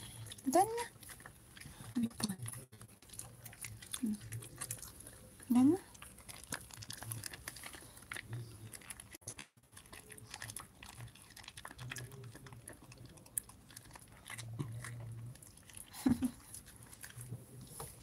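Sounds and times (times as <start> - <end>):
dog crunching a treat: 0.0 - 17.8.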